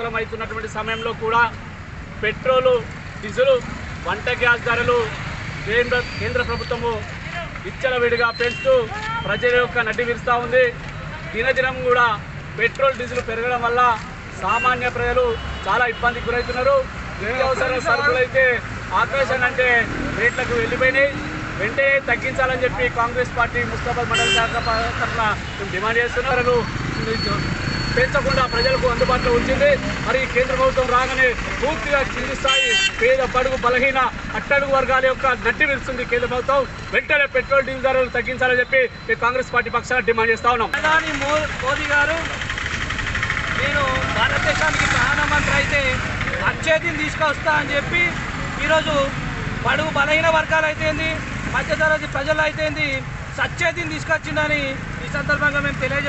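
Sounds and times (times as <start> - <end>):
street traffic rumble: 0.0 - 56.0
man speaking: 2.2 - 27.4, 43.6 - 56.0.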